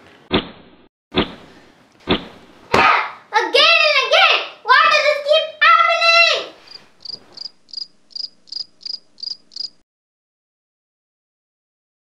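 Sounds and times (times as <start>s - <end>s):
girl calling out: 2.9s - 6.6s
cricket chirping: 6.7s - 9.8s.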